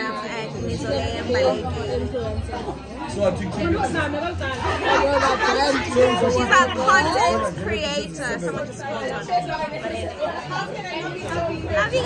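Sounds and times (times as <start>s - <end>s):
background conversation: 0.0s - 12.0s
people talking: 0.0s - 12.0s.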